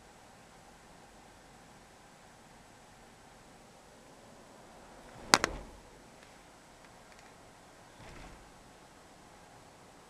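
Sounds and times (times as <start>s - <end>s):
road noise inside car: 0.0s - 10.0s.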